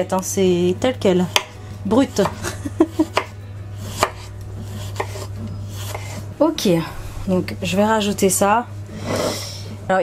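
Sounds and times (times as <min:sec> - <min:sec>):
steady low hum: 0:00.0 - 0:10.0
knife chopping on wooden board: 0:01.3 - 0:02.4, 0:03.0 - 0:06.2.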